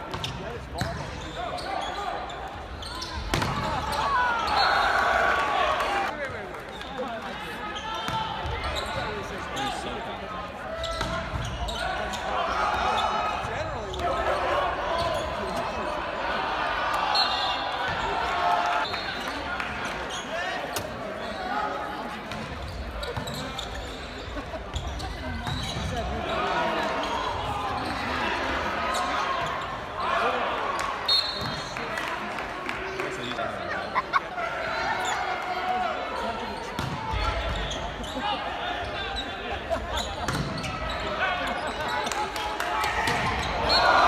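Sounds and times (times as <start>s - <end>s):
volleyball struck with slaps: 3.3s - 3.8s
shouting and cheering: 3.6s - 6.2s, 41.0s - 44.0s.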